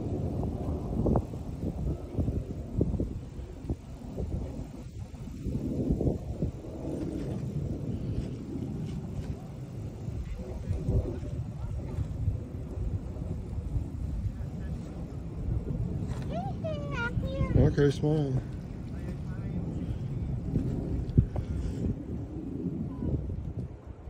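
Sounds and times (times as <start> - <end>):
wind buffeting microphone: 0.0 - 24.0
faint voices: 7.8 - 23.4.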